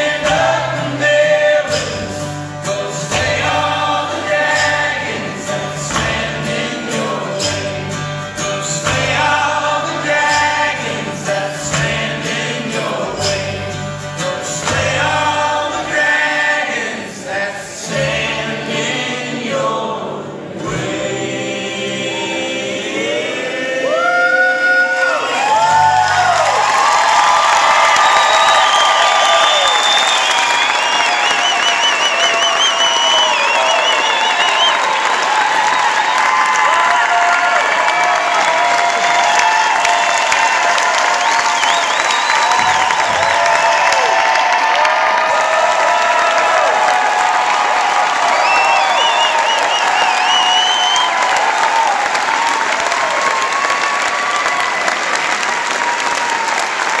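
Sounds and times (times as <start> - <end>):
audience applauding: 23.8 - 57.0
cheers and whistles: 23.8 - 57.0.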